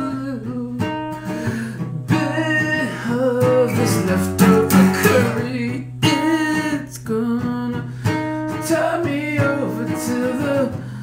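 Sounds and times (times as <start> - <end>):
acoustic guitar song: 0.0 - 11.0.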